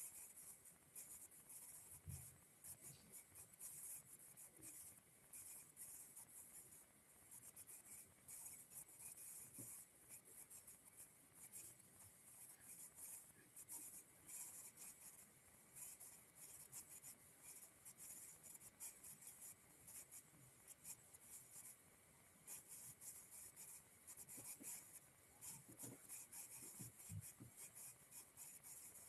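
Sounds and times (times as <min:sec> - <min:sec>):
faint high scratchy rustling: 0:00.0 - 0:21.8, 0:22.4 - 0:29.0.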